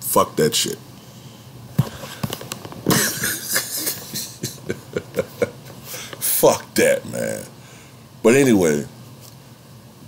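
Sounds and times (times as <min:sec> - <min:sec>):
man laughing: 0:02.9 - 0:06.1.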